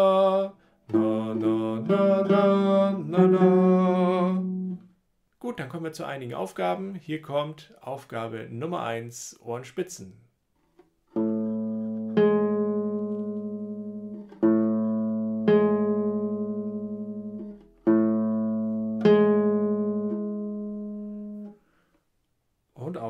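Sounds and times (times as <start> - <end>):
classical guitar plucked notes: 0.9 - 4.9, 11.1 - 21.6.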